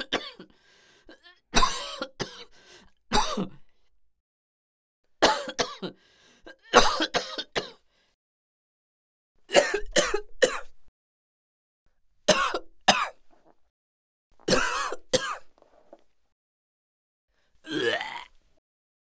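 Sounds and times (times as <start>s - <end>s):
person coughing: 0.0s - 0.5s, 1.6s - 2.5s, 3.1s - 3.6s, 5.2s - 7.8s, 9.5s - 10.7s, 14.5s - 15.5s.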